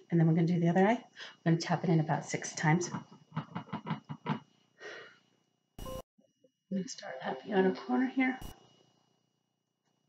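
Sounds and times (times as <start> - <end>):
soft breath: 4.6 - 5.4.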